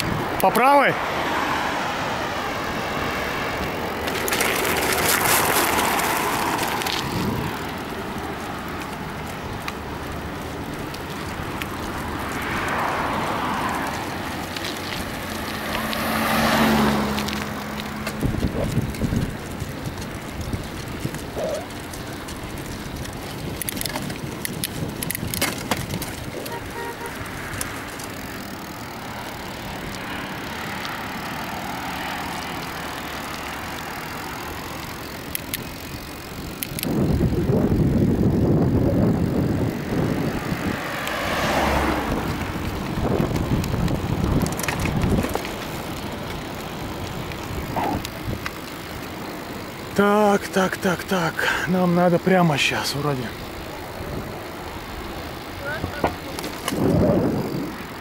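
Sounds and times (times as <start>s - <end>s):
wind buffeting microphone: 0.0s - 0.4s, 2.2s - 30.0s, 35.2s - 48.6s, 53.4s - 58.0s
bicycle tyre noise on asphalt: 0.0s - 58.0s
bike clicks and rattles: 0.0s - 58.0s.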